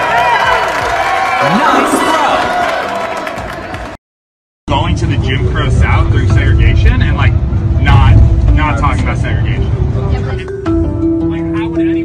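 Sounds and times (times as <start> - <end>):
man talking: 1.4 - 2.6
bus engine and road rumble: 4.8 - 10.5.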